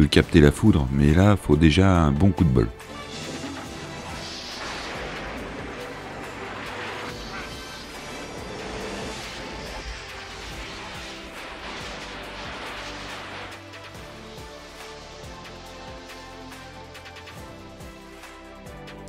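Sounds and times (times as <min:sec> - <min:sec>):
dramatic music: 0:00.0 - 0:19.0
electrical crackle and crash effects: 0:02.8 - 0:17.5.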